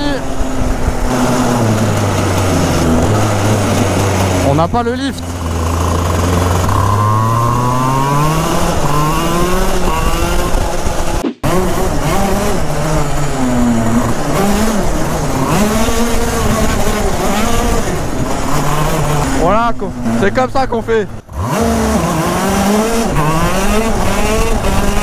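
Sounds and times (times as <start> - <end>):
kart engine revving: 0.0 - 25.0.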